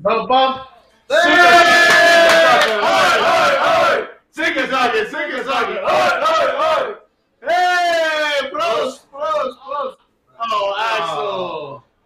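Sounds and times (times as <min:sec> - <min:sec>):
men cheering and shouting: 0:01.1 - 0:09.6, 0:10.4 - 0:11.8.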